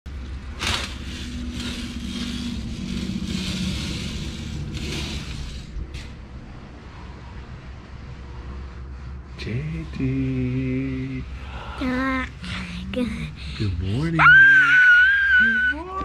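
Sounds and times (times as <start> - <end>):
low rumble and hum: 0.1 - 16.0
curtain rustling: 0.2 - 6.2.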